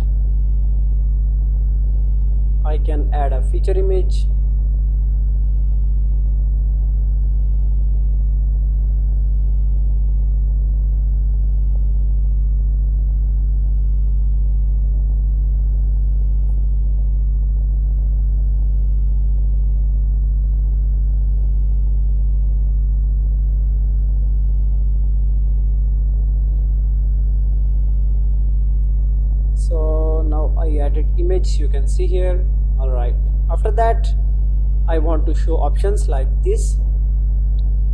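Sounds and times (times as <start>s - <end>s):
low electrical hum: 0.0s - 37.9s
narration: 2.6s - 4.4s, 29.6s - 34.2s, 34.9s - 36.9s.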